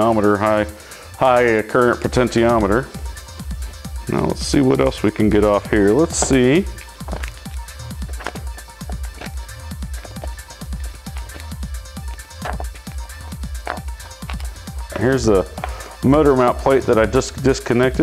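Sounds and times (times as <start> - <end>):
electronic music with pulsing bass: 2.1 - 17.5.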